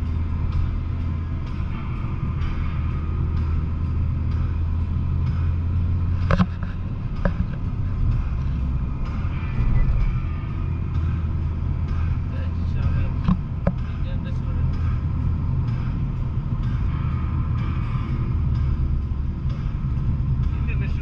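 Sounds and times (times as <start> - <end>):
car engine and road noise: 0.0 - 21.0.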